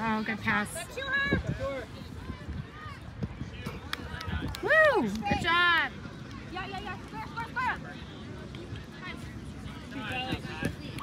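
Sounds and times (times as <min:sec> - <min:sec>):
soccer ball kicks and running: 0:01.3 - 0:04.6, 0:08.2 - 0:11.0.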